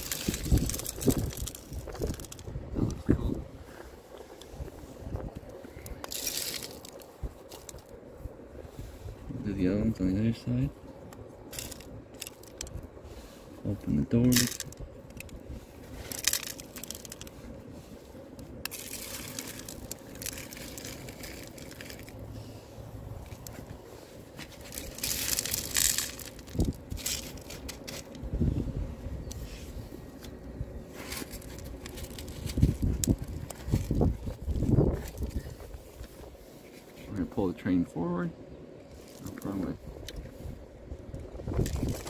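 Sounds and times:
gravel crunching and rattling: 0:00.0 - 0:37.9, 0:38.8 - 0:42.0.

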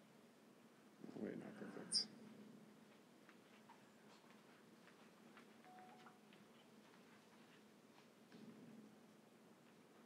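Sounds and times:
faint steady tone: 0:05.6 - 0:06.4.

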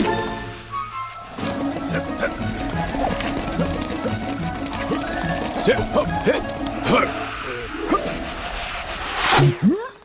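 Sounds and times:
steady hiss: 0:06.7 - 0:09.4.

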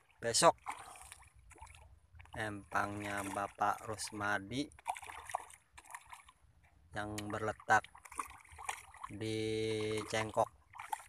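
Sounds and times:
fish splashing at water surface: 0:00.0 - 0:11.0.

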